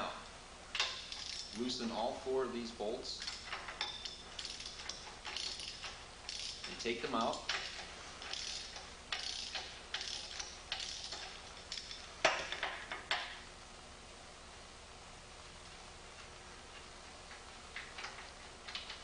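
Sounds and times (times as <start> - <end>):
socket wrench ratcheting: 0.8 - 1.6, 3.2 - 13.3.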